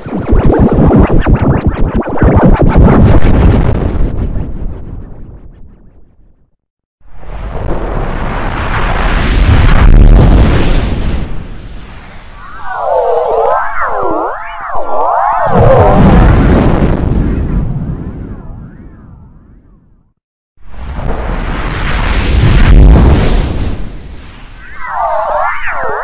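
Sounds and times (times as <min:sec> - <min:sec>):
warbling swooping tones: 0:12.1 - 0:16.3, 0:24.5 - 0:26.0
rumbling explosion-like blast: 0:15.4 - 0:19.3, 0:20.8 - 0:24.4.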